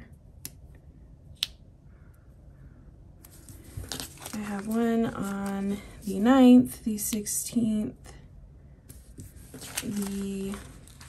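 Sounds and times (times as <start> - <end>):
paper rustling: 3.3 - 6.2, 8.9 - 11.0.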